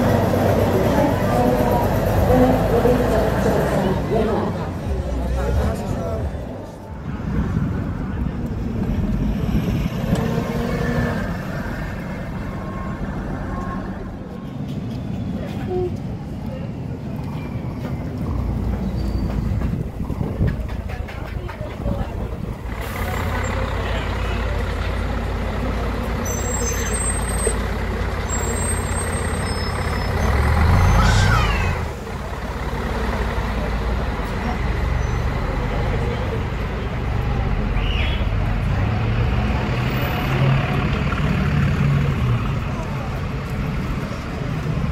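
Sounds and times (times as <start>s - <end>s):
diesel buses idling: 0.0s - 14.4s, 18.0s - 44.9s.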